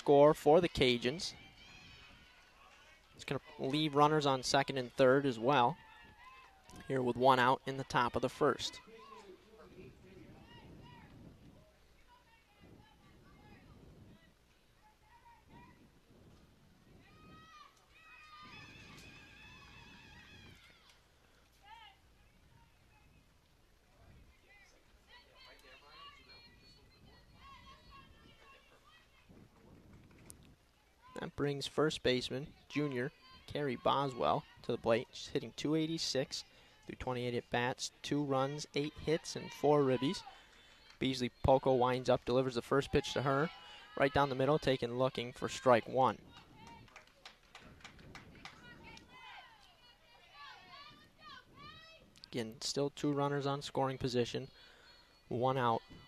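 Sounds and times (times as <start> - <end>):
voices calling and chanting: 0.0 - 29.8, 30.4 - 56.0.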